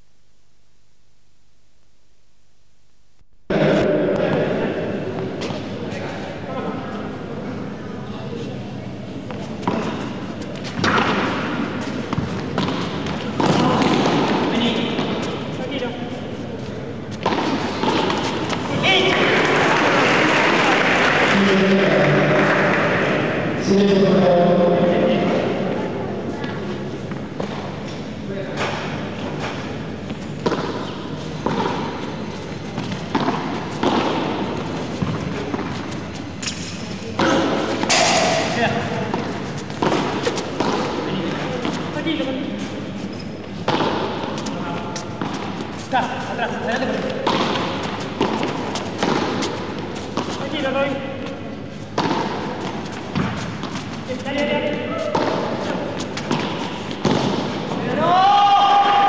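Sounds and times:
ball thudding in echoing hall: 3.5s - 7.8s, 8.9s - 59.0s.

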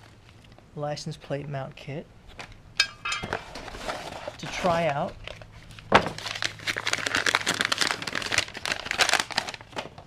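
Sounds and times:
packing paper crinkling: 3.3s - 10.0s.

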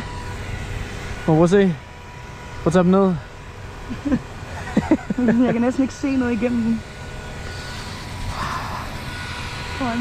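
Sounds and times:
high whine: 0.0s - 10.0s
snow cannon fan blowing: 0.0s - 10.0s.

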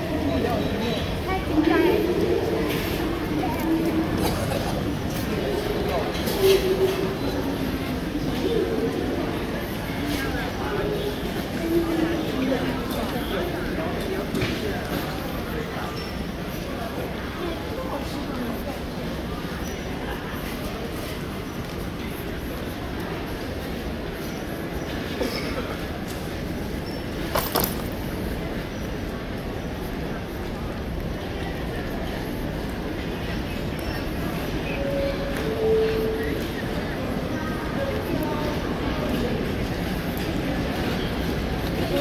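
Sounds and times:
airport terminal rumble: 0.0s - 42.0s
faint scattered sounds: 25.2s - 42.0s.

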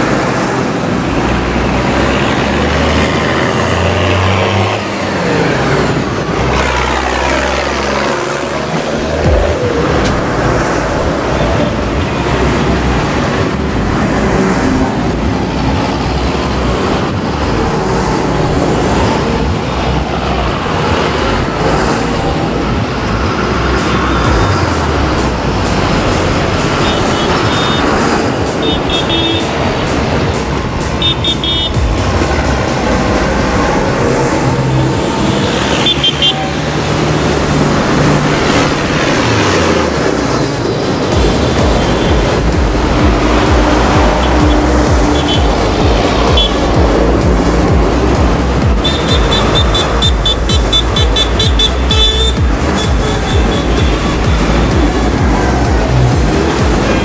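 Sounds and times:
tractor diesel engines running: 0.0s - 57.0s
tyre and road noise: 0.0s - 57.0s.

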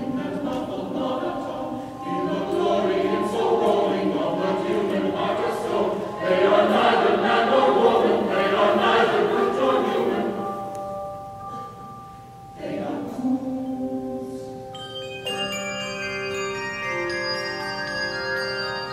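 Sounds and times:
mixed choir singing: 0.0s - 10.7s, 12.5s - 14.6s
handbells ringing: 14.6s - 18.9s.

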